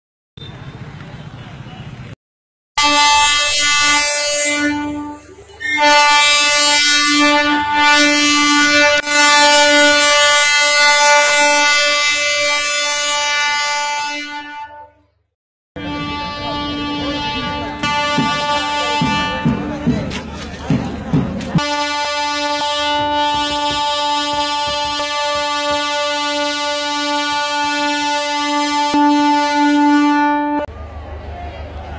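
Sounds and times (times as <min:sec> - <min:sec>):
train horn blasts: 0:02.8 - 0:15.1, 0:15.8 - 0:19.8, 0:21.6 - 0:30.7.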